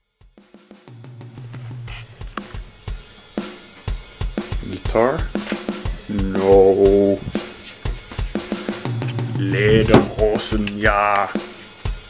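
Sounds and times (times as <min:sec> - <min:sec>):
drum kit beat: 0:00.4 - 0:12.0.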